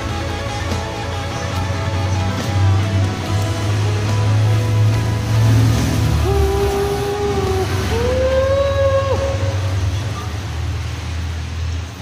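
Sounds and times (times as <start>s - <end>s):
man singing a long note: 6.2s - 9.7s.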